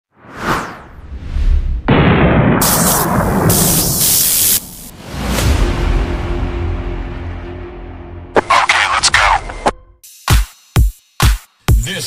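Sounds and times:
whoosh: 0:00.1 - 0:05.7
loud boom-like hit: 0:01.7 - 0:07.3
loud hissing noise: 0:02.6 - 0:04.9.

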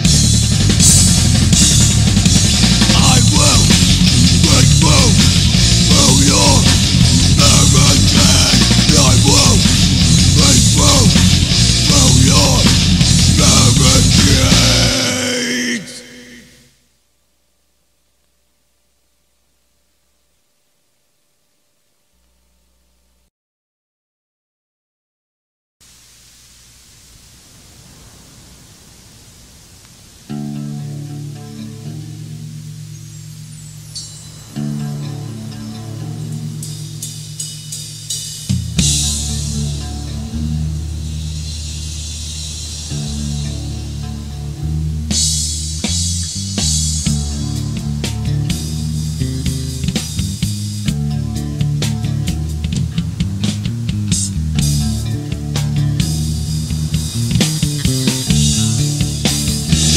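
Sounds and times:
ringing low guitar and bass: 0:00.0 - 0:15.4, 0:30.3 - 0:59.9
punk band playing: 0:00.0 - 0:15.9, 0:34.1 - 0:59.9
cymbal wash: 0:25.9 - 0:59.9.

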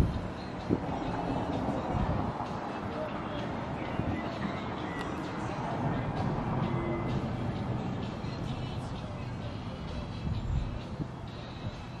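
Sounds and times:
faint indistinct voices: 0:00.3 - 0:12.0.

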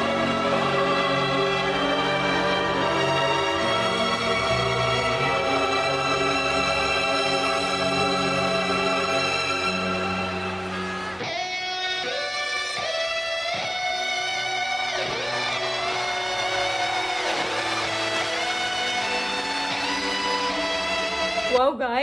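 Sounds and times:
electric guitar lead melody: 0:00.0 - 0:21.8
rock band backing: 0:08.2 - 0:21.5.

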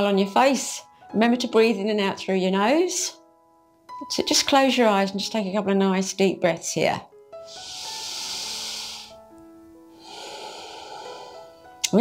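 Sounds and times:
soft background music: 0:00.0 - 0:12.0
woman breathing through nose: 0:07.4 - 0:09.3, 0:09.9 - 0:11.8.

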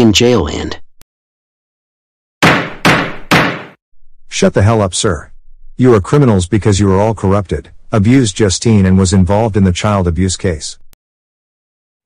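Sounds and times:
gavel knocking on wood: 0:02.4 - 0:03.8.

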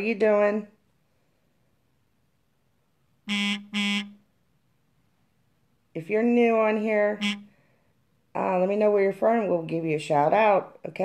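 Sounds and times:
short electronic buzzes: 0:03.3 - 0:04.2.

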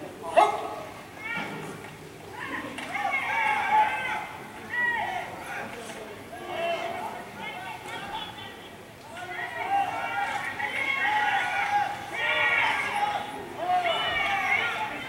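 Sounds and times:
spectators shouting encouragement: 0:00.0 - 0:15.0
sharp shout: 0:00.2 - 0:05.6, 0:06.3 - 0:15.0.

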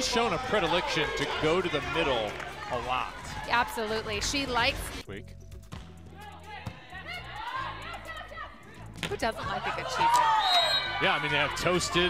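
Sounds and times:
low background music: 0:00.0 - 0:12.0.

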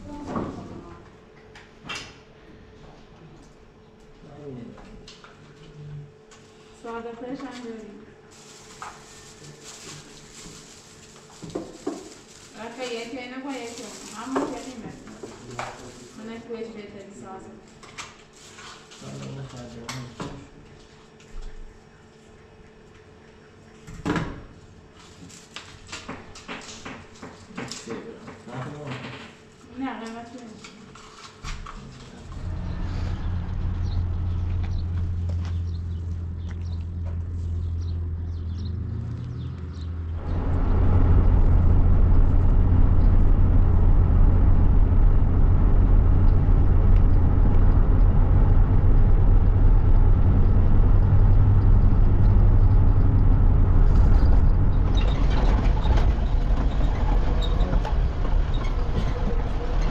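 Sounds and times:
engine and road rumble: 0:32.2 - 0:59.9.

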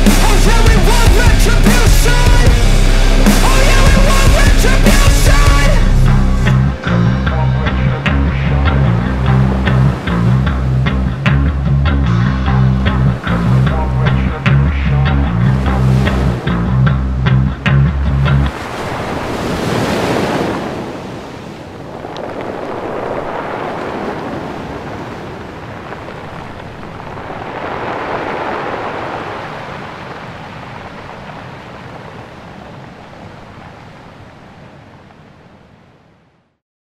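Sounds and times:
music: 0:00.0 - 0:18.5
rough sea waves: 0:00.0 - 0:36.4.

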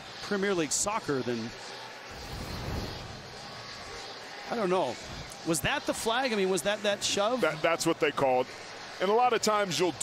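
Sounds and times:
stadium crowd murmur: 0:00.0 - 0:10.0
transition whoosh: 0:02.1 - 0:03.6.

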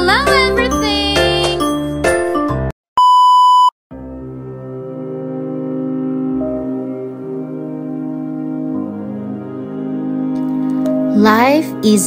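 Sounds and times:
high electronic beep: 0:03.0 - 0:03.7
soft background music: 0:04.0 - 0:12.0.

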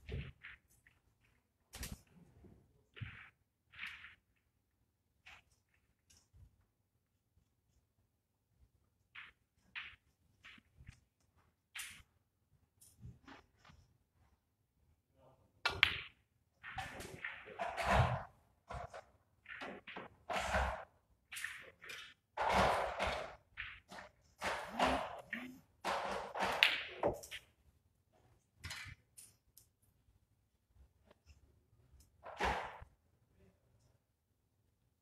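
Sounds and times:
snooker balls knocking: 0:15.6 - 0:27.5.

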